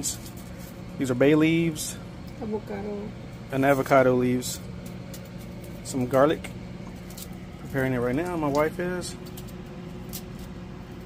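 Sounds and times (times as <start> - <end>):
appliance humming: 0.0 - 11.0.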